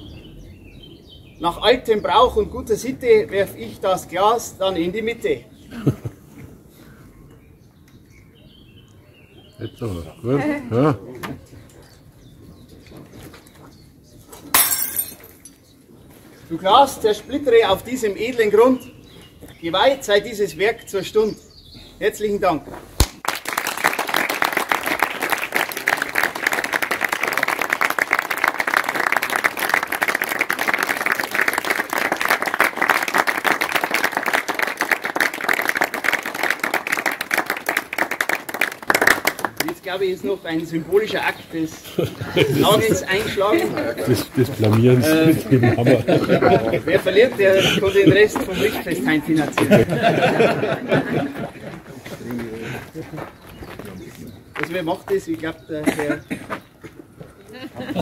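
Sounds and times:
crowd applauding: 23.0 - 39.8
crowd talking quietly: 39.6 - 58.0.

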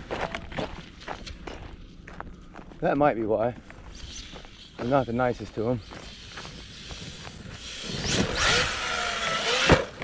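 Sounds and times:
footsteps on grass and mulch: 0.0 - 7.8.

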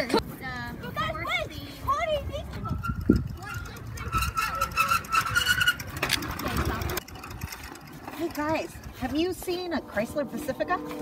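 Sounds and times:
wind noise on microphone: 0.0 - 11.0
bicycle squeaking: 2.0 - 11.0.

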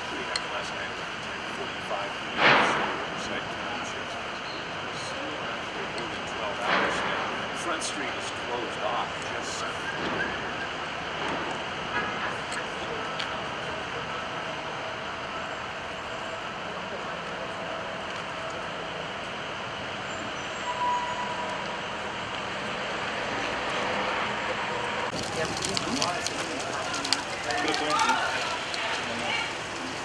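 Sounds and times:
road traffic hum: 0.0 - 30.0.

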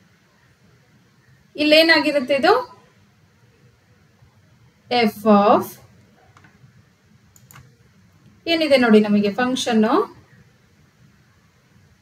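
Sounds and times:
faint clicks: 7.3 - 7.7.

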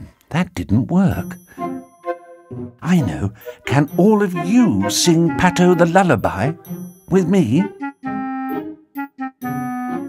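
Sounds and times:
electronic keyboard melody: 1.1 - 10.0.

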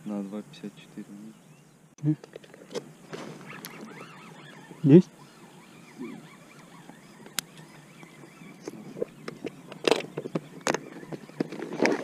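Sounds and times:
fishing gear clicks and knocks: 6.9 - 12.0.

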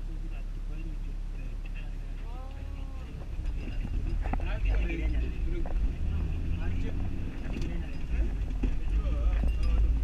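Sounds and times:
passengers talking: 0.0 - 10.0
van engine and road rumble: 0.0 - 10.0.

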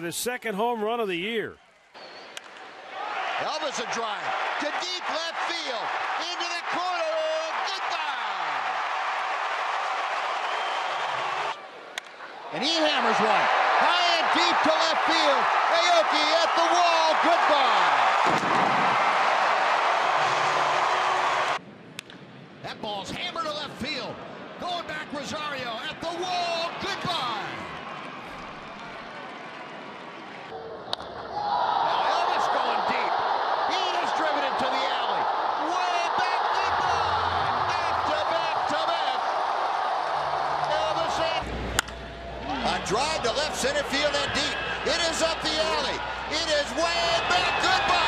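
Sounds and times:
crowd cheering loudly: 2.0 - 21.6, 25.4 - 48.0
bat cracking on ball: 41.7 - 42.0.

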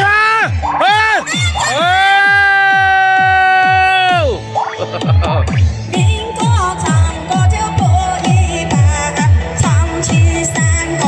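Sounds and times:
electronic bass beat: 0.0 - 11.0.

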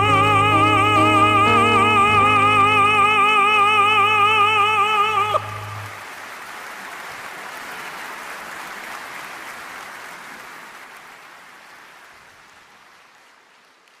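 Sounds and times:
audience applauding: 5.4 - 14.0.

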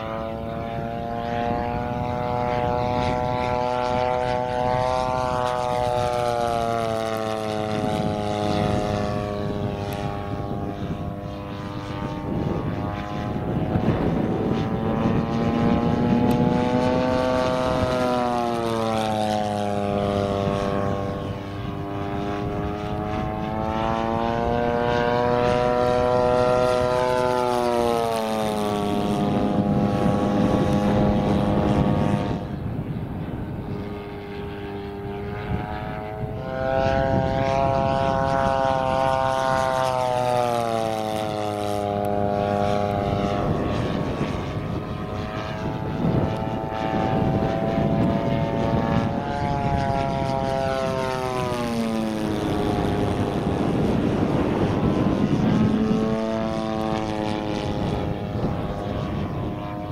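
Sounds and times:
model plane engine in flight: 0.0 - 59.9.

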